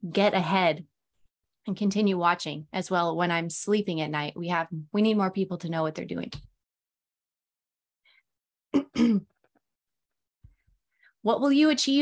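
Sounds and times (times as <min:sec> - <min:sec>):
woman clearing her throat: 0:08.7 - 0:09.4.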